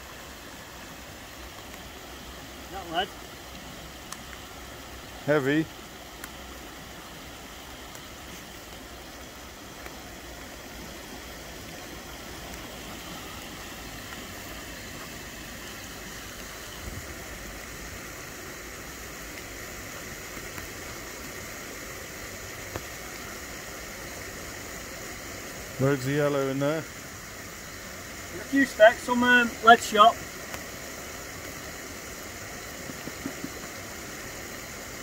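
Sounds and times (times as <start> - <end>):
flowing water rushing: 0.0 - 35.0.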